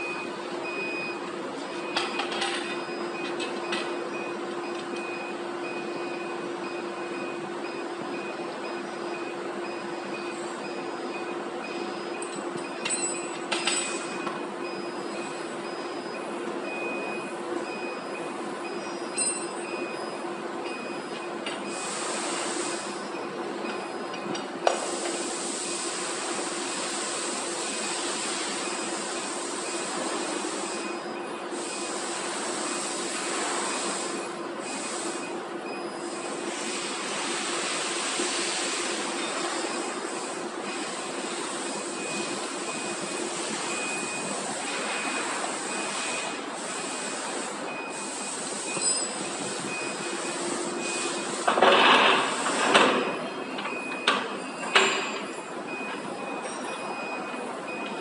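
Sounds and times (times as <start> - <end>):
machine hum and hiss: 0.0 - 58.0.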